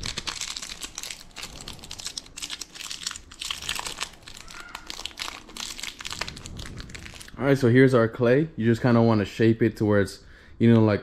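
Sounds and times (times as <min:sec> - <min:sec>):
plastic wrapper crinkling: 0:00.0 - 0:07.5.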